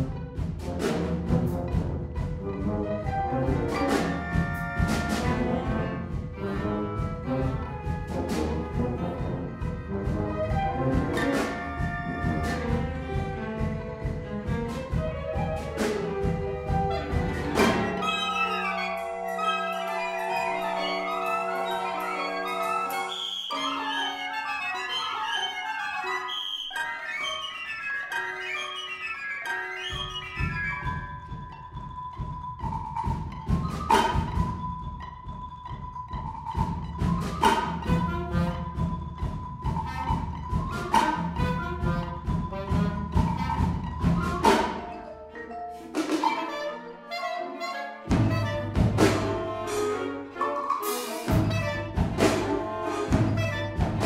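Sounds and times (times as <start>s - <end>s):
chamber orchestra: 0.0s - 54.0s
marimba played with mallets: 14.9s - 54.0s
held high note: 16.8s - 27.4s
loud accented strikes: 16.9s - 23.8s.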